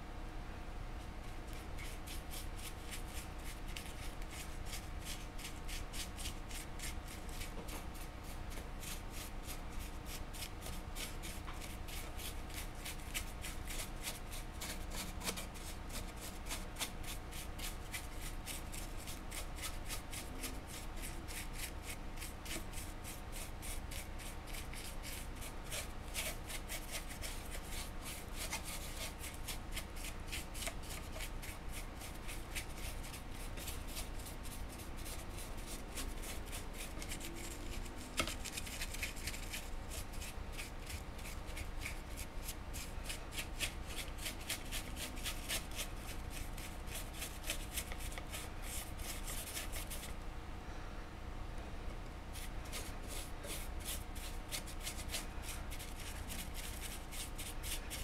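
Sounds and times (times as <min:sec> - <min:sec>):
faint steady hum: 0:00.0 - 0:58.0
paintbrush scratching and dabbing: 0:01.5 - 0:50.1, 0:52.3 - 0:57.9.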